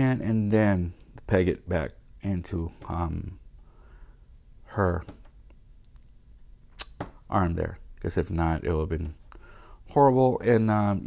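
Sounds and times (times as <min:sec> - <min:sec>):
sharp click: 0:06.8 - 0:07.1.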